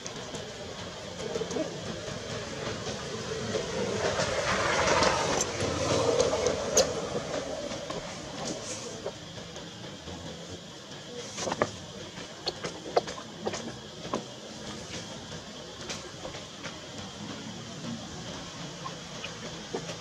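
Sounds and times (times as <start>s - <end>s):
steady rushing rumble: 0.0s - 20.0s.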